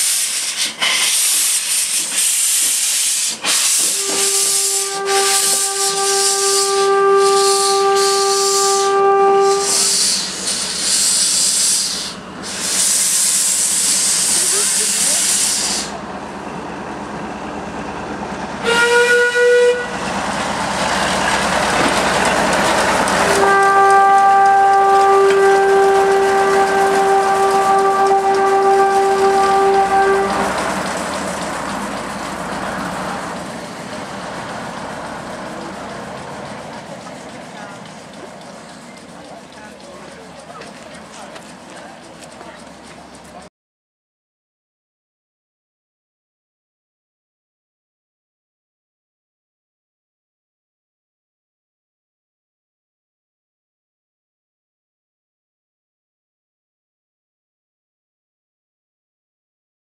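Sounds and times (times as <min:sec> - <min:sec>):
steam locomotive hissing: 0:00.0 - 0:18.2, 0:20.0 - 0:43.5
steam whistle blasts: 0:01.5 - 0:15.9, 0:18.6 - 0:20.0, 0:23.3 - 0:30.6.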